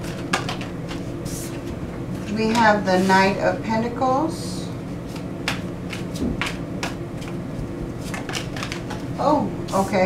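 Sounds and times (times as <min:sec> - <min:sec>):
cards being shuffled by hand: 0:05.1 - 0:09.1.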